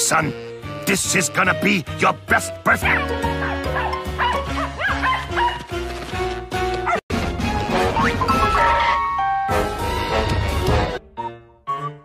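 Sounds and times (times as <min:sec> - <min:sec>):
background music with held notes: 0:00.0 - 0:12.0
cartoon dog yipping and barking: 0:02.7 - 0:05.6.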